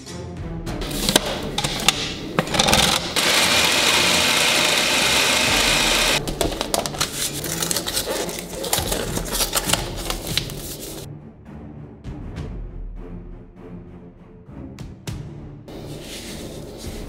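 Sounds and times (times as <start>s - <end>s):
food processor grinding: 0.8s - 11.1s
plastic lid clicking and knocking: 0.9s - 3.4s, 6.2s - 7.8s.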